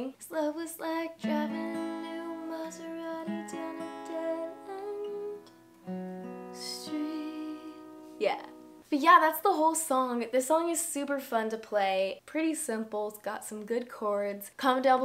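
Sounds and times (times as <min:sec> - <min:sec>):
acoustic guitar chords picked: 0:01.2 - 0:08.9.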